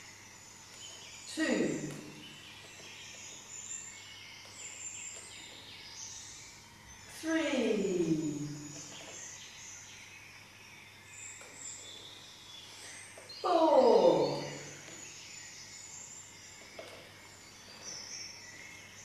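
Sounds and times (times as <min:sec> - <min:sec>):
faint bird chirps: 0:00.0 - 0:19.0
woman calling: 0:13.4 - 0:14.7.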